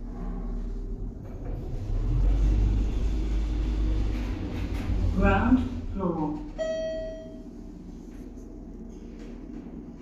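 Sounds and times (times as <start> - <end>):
lift rumbling: 0.0 - 10.0.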